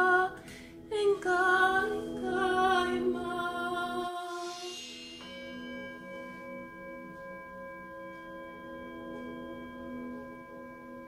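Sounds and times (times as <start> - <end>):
bell-like tone ringing: 2.6 - 11.0.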